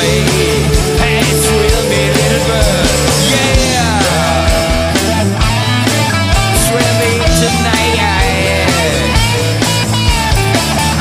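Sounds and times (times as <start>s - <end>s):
drum hits: 0.0s - 11.0s
electric lead guitar: 0.0s - 11.0s
rock band playing: 0.0s - 11.0s.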